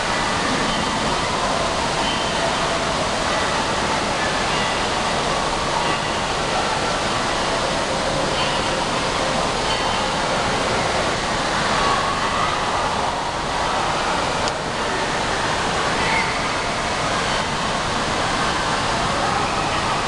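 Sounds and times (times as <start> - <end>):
water rushing: 0.0 - 20.0.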